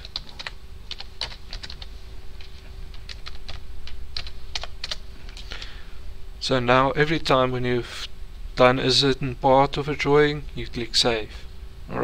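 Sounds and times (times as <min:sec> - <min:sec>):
computer keyboard typing: 0:00.0 - 0:05.0.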